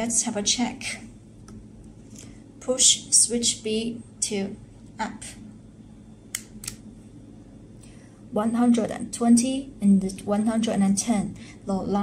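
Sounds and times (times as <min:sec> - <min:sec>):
toggle switch clicks: 0:06.3 - 0:06.8.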